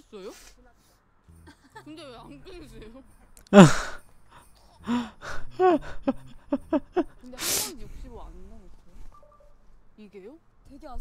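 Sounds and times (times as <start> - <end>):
women talking quickly: 7.2 - 9.1.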